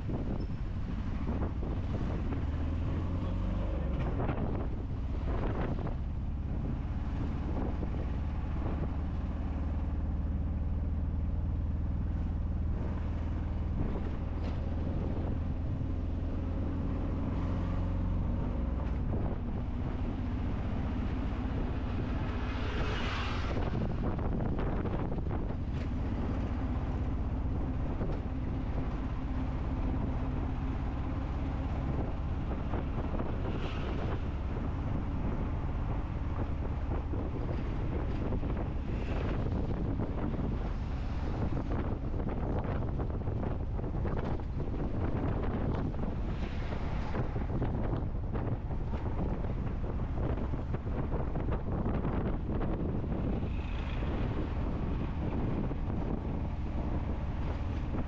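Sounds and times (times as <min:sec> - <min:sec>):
road and wind noise: 0:00.0 - 0:58.0.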